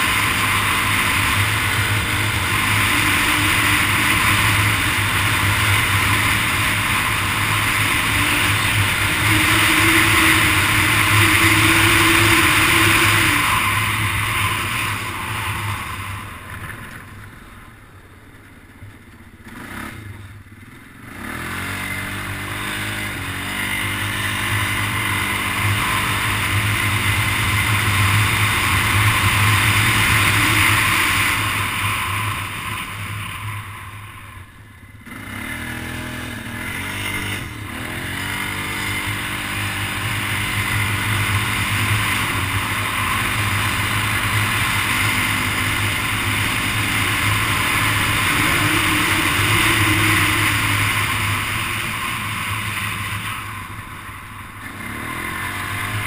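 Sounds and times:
quad bike engine revving: 0.0 - 17.6, 18.5 - 56.0.

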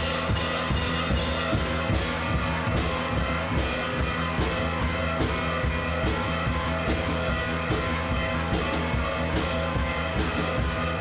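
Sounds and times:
drum kit beat: 0.0 - 11.0
rock guitar: 0.0 - 11.0.

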